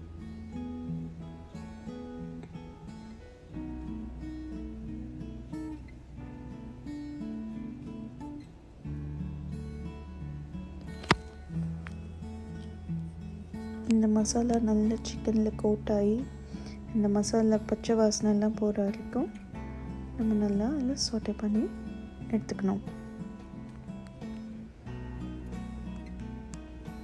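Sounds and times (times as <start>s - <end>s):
acoustic guitar music: 0.0s - 27.0s.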